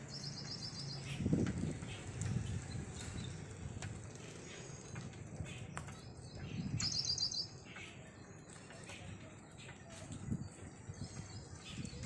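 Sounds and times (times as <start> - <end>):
bird chirping: 4.4 - 9.9.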